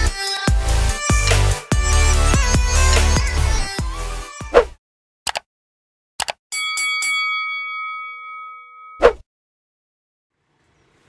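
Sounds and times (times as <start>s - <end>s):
quick clicks: 5.3s - 5.5s
bell-like ding: 6.5s - 9.0s.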